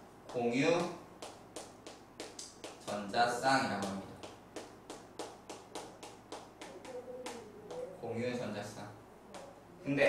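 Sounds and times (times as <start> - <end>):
chalk tapping on chalkboard: 0.2 - 7.9.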